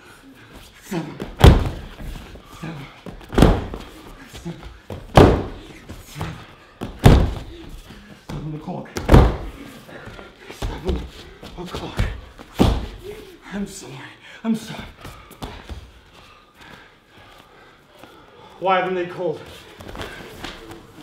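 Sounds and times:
heavy thuds on floor mats: 1.2 - 2.3, 3.1 - 3.9, 4.9 - 9.6, 11.8 - 13.0.

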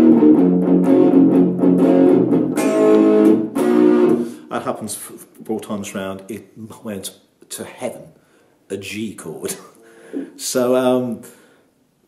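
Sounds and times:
strummed guitar chord: 0.0 - 4.4
electric guitar blues riff: 0.0 - 4.5.

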